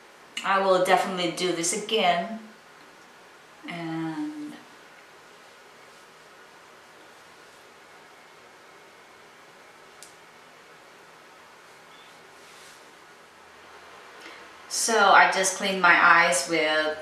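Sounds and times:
soft rustle: 0:04.6 - 0:08.6, 0:11.3 - 0:14.6.

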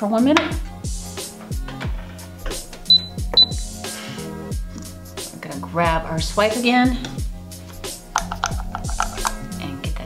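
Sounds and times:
background music with a beat: 0:00.4 - 0:10.0.

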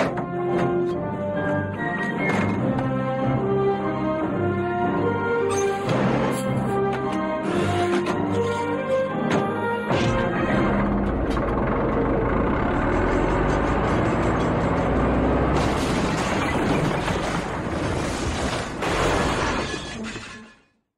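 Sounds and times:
film soundtrack music: 0:00.0 - 0:16.0
bulldozer engine running: 0:00.0 - 0:18.2
door crashing: 0:02.1 - 0:03.0, 0:05.5 - 0:11.6, 0:15.5 - 0:20.6.

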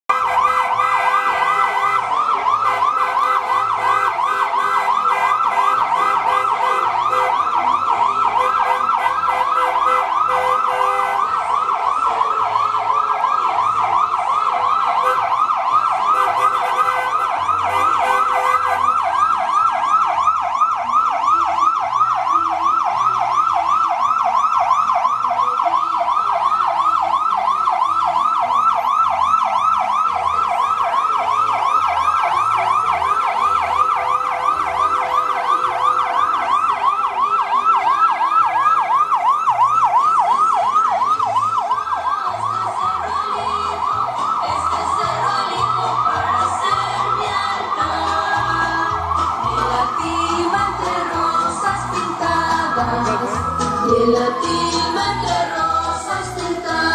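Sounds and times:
emergency siren yelping: 0:00.0 - 0:56.9.

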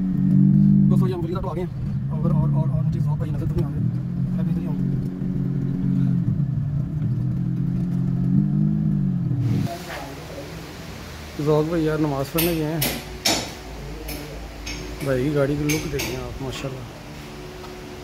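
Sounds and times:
car engine running at low revs: 0:00.0 - 0:12.2.

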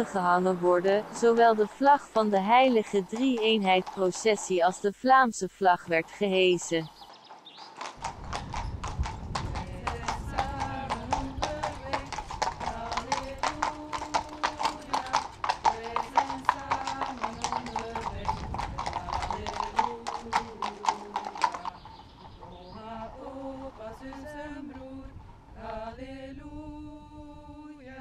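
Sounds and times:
horse hooves on pavement: 0:00.0 - 0:25.6.

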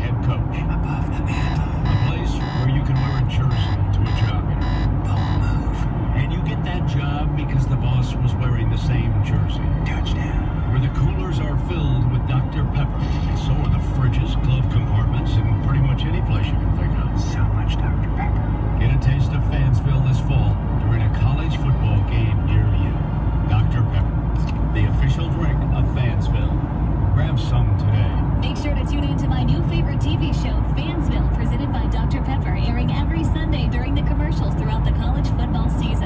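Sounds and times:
road and engine rumble in car: 0:00.0 - 0:36.0
voices from car radio: 0:00.0 - 0:36.0.

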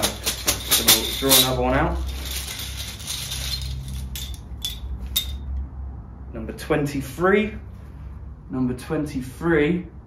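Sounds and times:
plastic tokens rattling in bag: 0:00.0 - 0:05.4.

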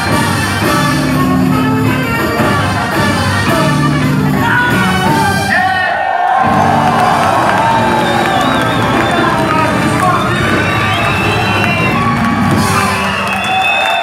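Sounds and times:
band music: 0:00.0 - 0:14.0
audience cheering and shouting: 0:01.8 - 0:14.0.

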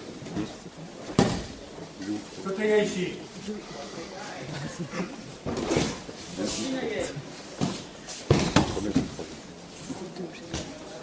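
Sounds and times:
bodies thudding on mats: 0:01.1 - 0:01.6, 0:05.4 - 0:06.1, 0:07.5 - 0:09.2.

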